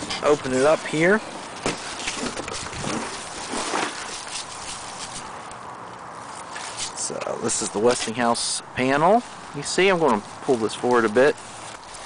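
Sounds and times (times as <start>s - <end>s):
styrofoam packing rustling: 0.0s - 5.5s.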